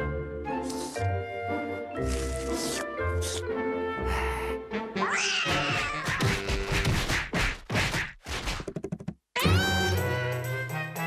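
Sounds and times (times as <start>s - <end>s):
cartoon cat meow-like cry: 5.0s - 6.1s, 9.4s - 10.0s.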